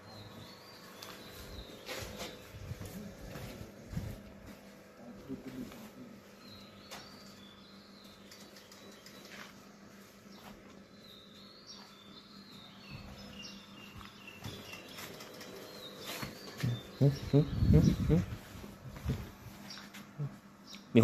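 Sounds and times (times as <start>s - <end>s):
faint bird chirps: 5.2s - 18.4s.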